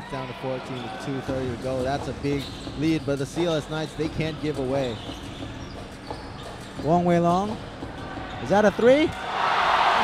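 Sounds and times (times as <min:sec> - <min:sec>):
arena crowd noise: 0:00.0 - 0:04.9, 0:06.9 - 0:10.0
basketball bouncing on court: 0:00.8 - 0:08.5.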